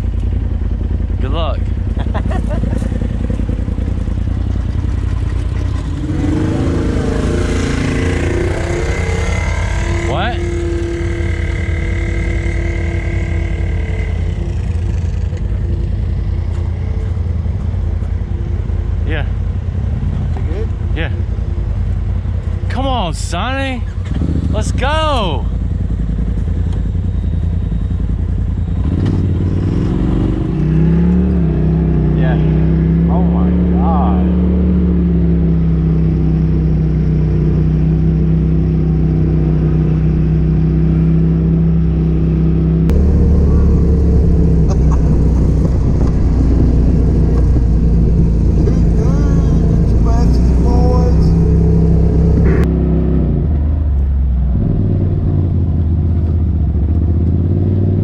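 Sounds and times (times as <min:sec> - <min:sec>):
off-road vehicle engine running: 0:00.0 - 0:58.0.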